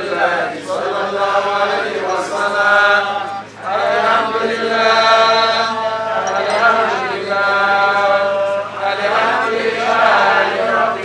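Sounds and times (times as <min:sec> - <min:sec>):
man chanting prayer through microphone: 0:00.0 - 0:11.0.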